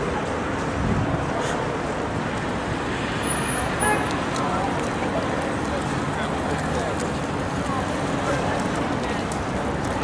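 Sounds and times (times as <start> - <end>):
crowd voices: 0.0 - 10.0
road traffic noise: 0.0 - 10.0.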